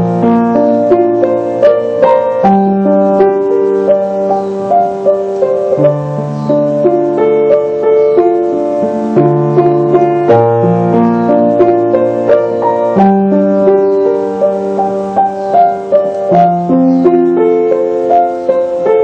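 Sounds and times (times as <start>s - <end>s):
slow gentle solo piano: 0.0s - 19.0s.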